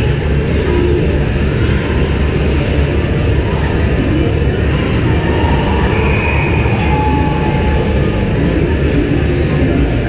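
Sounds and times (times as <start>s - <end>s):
low indoor rink rumble: 0.0s - 10.0s.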